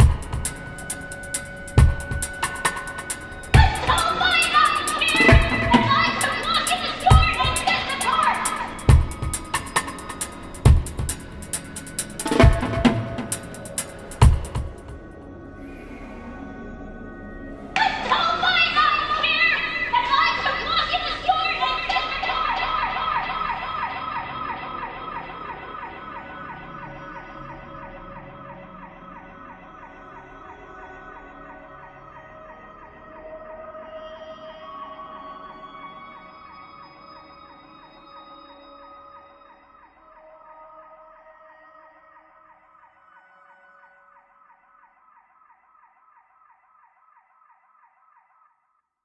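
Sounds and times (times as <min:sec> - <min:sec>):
low electronic notes: 0:00.0 - 0:18.2
wavering electronic tones: 0:00.0 - 0:28.4.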